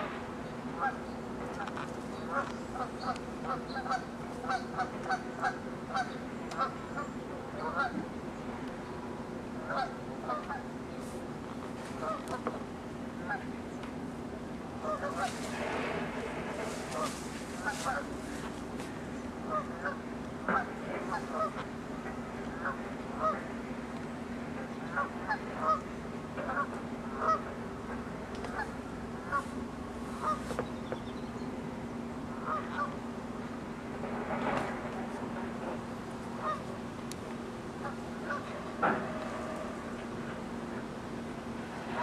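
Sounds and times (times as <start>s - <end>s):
low hum: 0.0s - 42.0s
geese honking: 1.6s - 6.8s, 9.6s - 10.7s, 14.8s - 18.5s, 19.4s - 21.7s, 22.5s - 23.5s, 24.8s - 25.8s, 26.4s - 29.5s, 30.1s - 30.6s, 32.4s - 33.0s, 36.4s - 36.7s, 37.8s - 40.4s.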